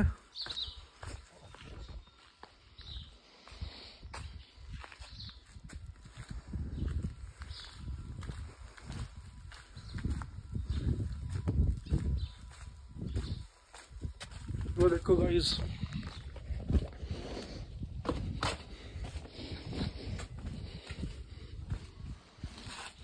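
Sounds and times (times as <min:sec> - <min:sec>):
footsteps on paved road: 0:00.0 - 0:23.0
phone microphone rumble: 0:15.6 - 0:22.8.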